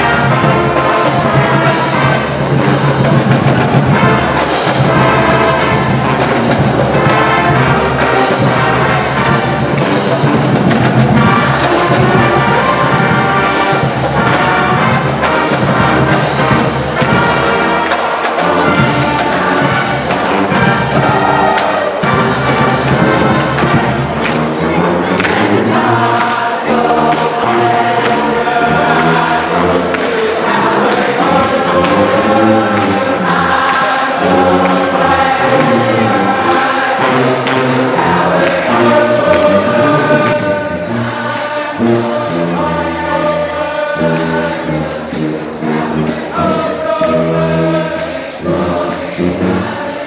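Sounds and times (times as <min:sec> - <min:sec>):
brass band playing held chords: 0:00.0 - 0:50.0.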